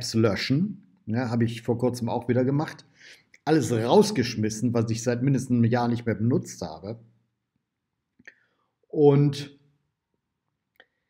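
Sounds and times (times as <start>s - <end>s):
man speaking: 0.0s - 2.8s, 3.4s - 7.0s, 9.0s - 9.5s.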